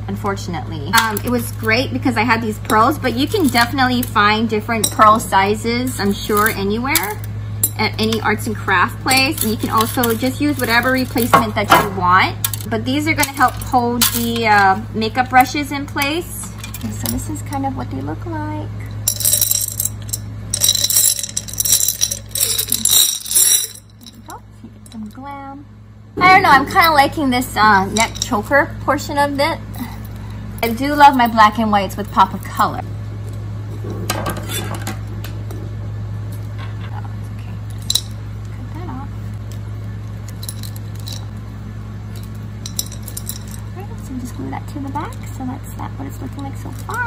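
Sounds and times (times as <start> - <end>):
steady low hum: 0.0 - 47.0
beads rattling in a glass jar: 18.9 - 24.4, 40.3 - 41.3, 42.1 - 43.7.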